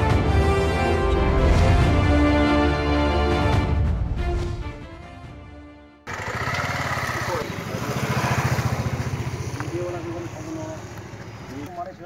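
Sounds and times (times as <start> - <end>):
vehicle engine running: 6.1 - 12.0.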